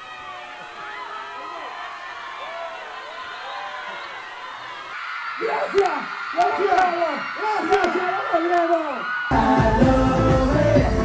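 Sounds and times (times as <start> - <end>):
crowd cheering and screaming: 0.0 - 11.0.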